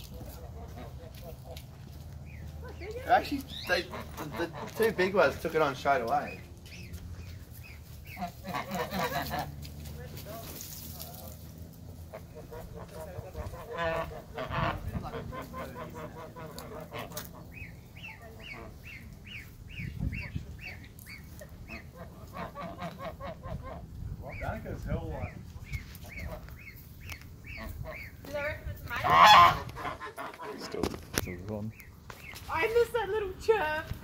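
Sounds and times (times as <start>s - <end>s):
goose honking: 0.0s - 10.6s, 11.2s - 31.3s.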